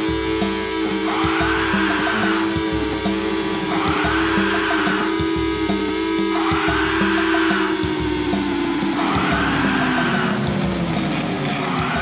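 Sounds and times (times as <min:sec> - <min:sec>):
drum kit: 0:00.0 - 0:12.0
electric guitar chords: 0:00.0 - 0:12.0
heavy metal song: 0:00.0 - 0:12.0.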